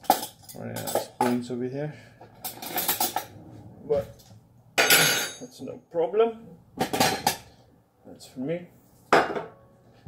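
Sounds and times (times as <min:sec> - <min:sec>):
metal spoons clattering: 0:00.0 - 0:01.4.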